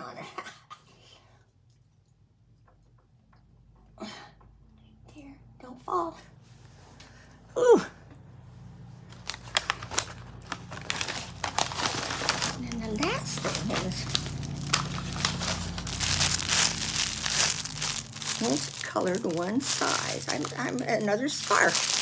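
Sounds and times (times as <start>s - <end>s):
plastic packaging crackling: 9.0s - 22.0s.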